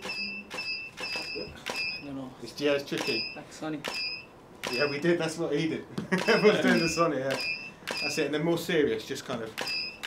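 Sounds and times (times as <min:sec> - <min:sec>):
short high electronic beeps: 0:00.0 - 0:02.1, 0:03.0 - 0:05.1, 0:06.2 - 0:08.3, 0:09.6 - 0:10.0.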